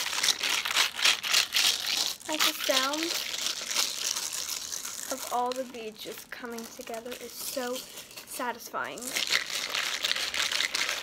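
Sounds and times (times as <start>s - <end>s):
beads and water rattling in bottle: 0.0s - 11.0s.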